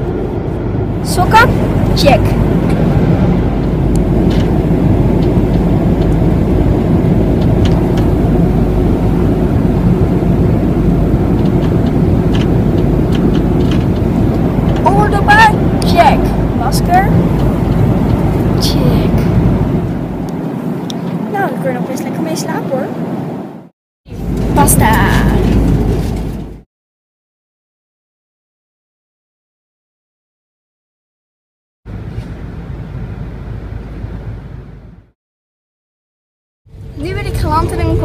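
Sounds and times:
airliner cabin rumble: 0.0s - 26.7s, 31.9s - 35.2s, 36.7s - 38.0s.

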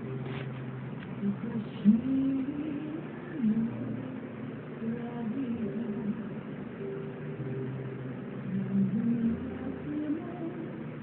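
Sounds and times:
singing through tv speakers: 0.0s - 11.0s.

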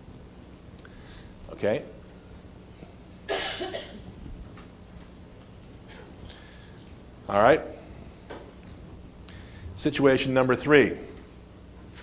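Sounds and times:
man coughing: 3.3s - 4.1s.

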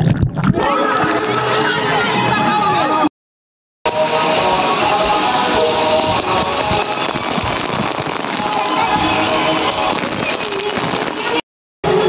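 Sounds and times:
water spraying and pouring: 3.9s - 11.4s
music playing: 3.9s - 12.0s.

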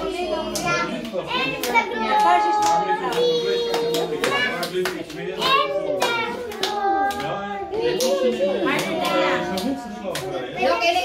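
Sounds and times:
children singing: 0.0s - 10.6s
hands clapping along: 0.4s - 10.5s.

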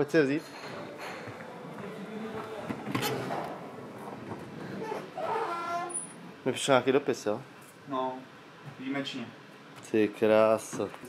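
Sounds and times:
room noise: 0.0s - 11.0s
indistinct background voices: 0.4s - 6.0s.

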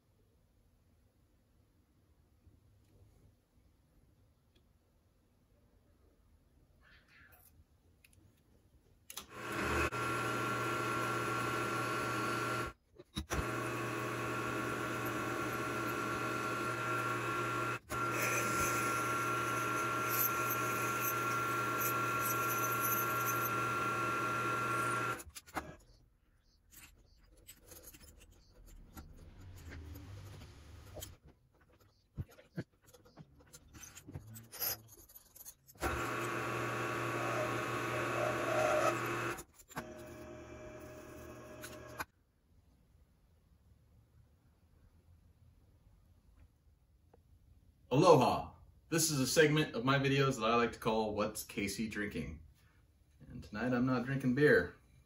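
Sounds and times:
milling machine motor whine: 9.2s - 25.8s, 35.8s - 42.0s.

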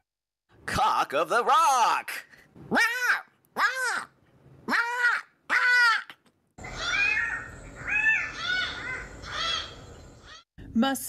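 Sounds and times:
bird squawking: 2.7s - 4.1s, 4.7s - 10.4s.

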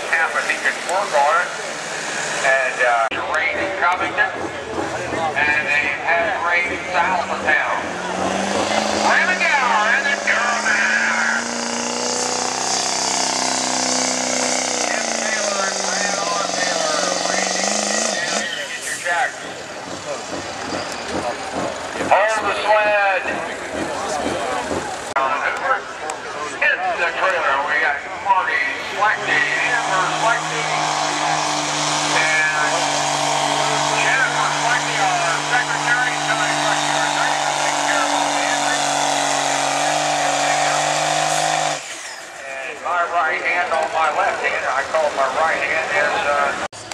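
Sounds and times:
voices: 0.0s - 11.5s, 14.8s - 41.1s, 42.4s - 46.9s
diesel engines under full load: 0.0s - 46.9s.

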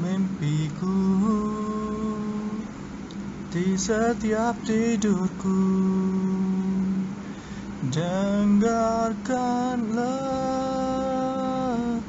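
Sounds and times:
man singing: 0.0s - 2.7s, 3.5s - 7.2s, 7.8s - 12.0s.

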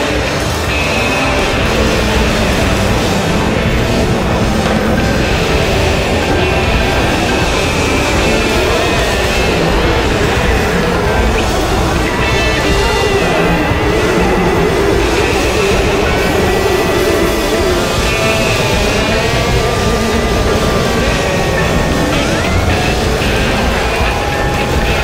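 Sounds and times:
psychedelic rock instrumental: 0.0s - 25.0s.

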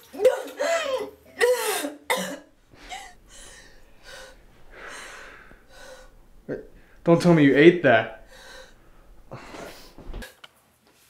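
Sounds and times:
woman coughing: 0.2s - 6.9s
soft breathing: 2.4s - 10.2s
faint rustles: 2.5s - 10.2s.

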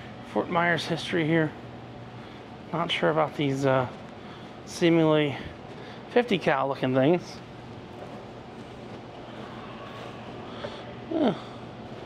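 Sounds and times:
room ambience hum and hiss: 0.0s - 12.0s.

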